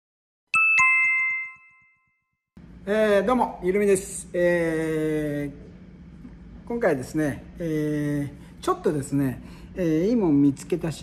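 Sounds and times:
two-note chime: 0.6s - 2.2s.

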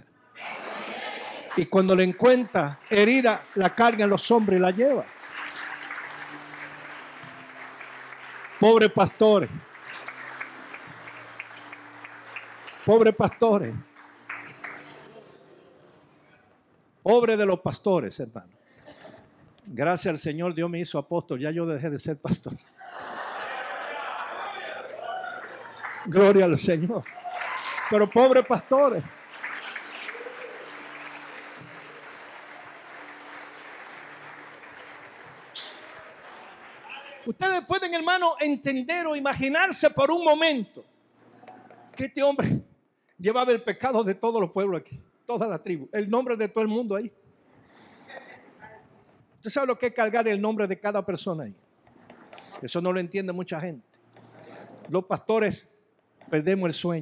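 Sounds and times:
congregation applauding: 0.6s - 15.6s, 23.0s - 38.3s.

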